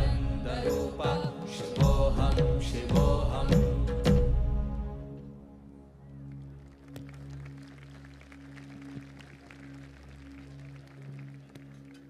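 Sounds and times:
low musical drone: 1.8 - 12.0.

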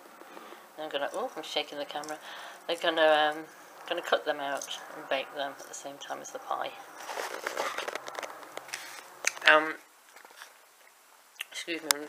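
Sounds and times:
camera handling noise: 7.1 - 9.4.

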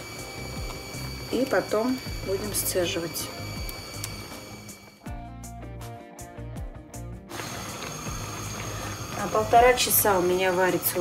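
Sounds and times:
pot bubbling and boiling: 0.0 - 4.9, 7.3 - 11.0.

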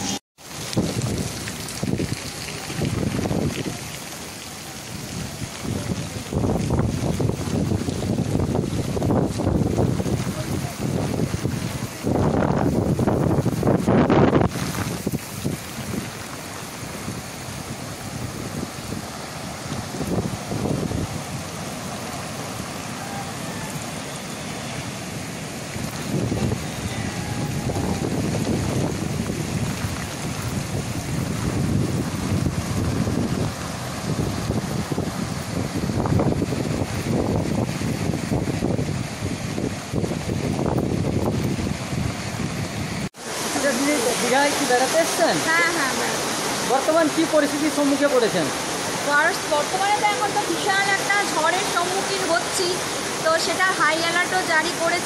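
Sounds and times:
storm wind buffeting microphone: 0.0 - 43.4.

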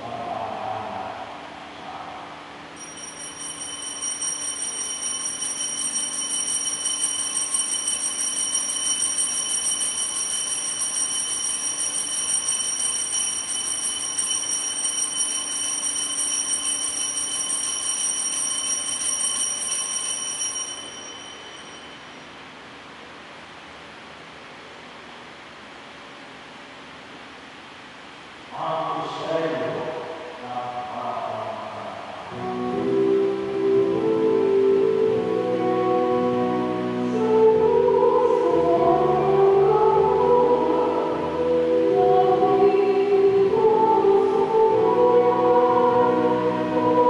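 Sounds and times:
altar bell ringing: 2.8 - 22.4.

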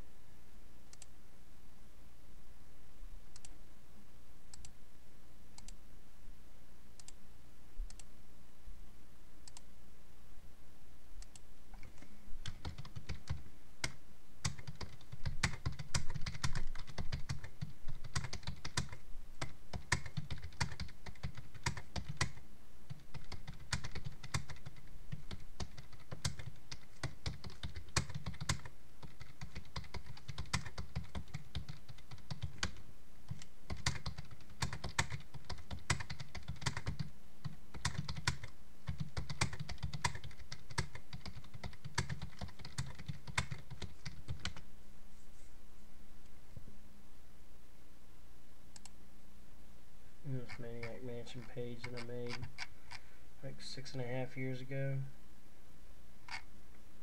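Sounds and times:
typing on computer keyboard: 12.4 - 44.6.

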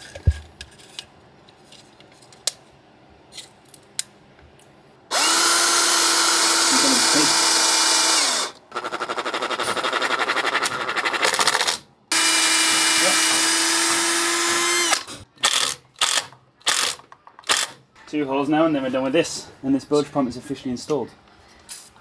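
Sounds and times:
cordless drill drilling wood: 5.1 - 8.6, 12.1 - 15.1.

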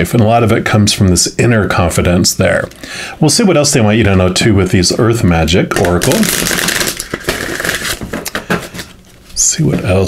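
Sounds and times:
cards riffle shuffling: 5.7 - 9.0
card deck rustling: 5.7 - 9.3.

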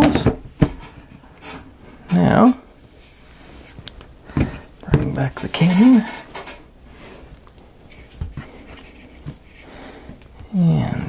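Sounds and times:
wooden parts clattering: 4.4 - 6.6.

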